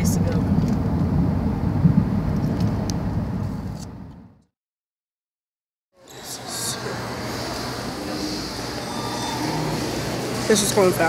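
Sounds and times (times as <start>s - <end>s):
road and engine rumble inside car: 0.0s - 4.3s.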